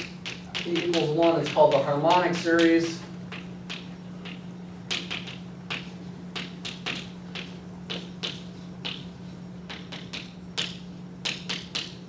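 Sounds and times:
chalk tapping and scraping on board: 0.0s - 12.0s.

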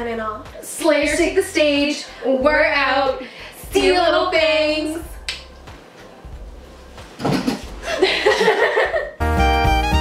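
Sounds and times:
finger snap: 5.2s - 5.8s.

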